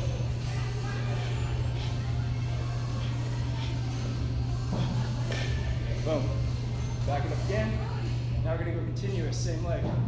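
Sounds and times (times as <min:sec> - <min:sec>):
low hum of indoor hall: 0:00.0 - 0:10.0.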